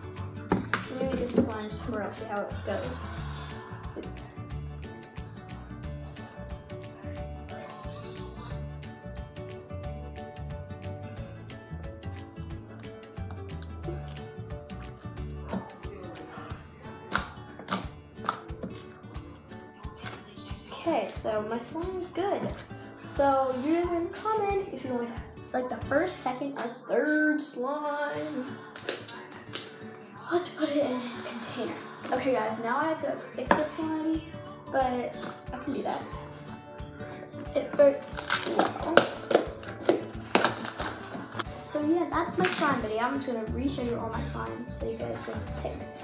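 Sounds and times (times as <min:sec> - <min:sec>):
background music: 0:00.0 - 0:46.0.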